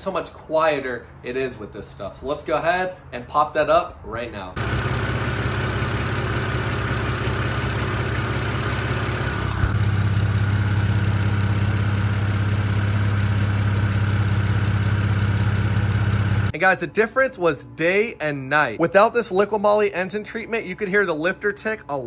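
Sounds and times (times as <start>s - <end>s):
car engine idling: 4.6s - 16.5s.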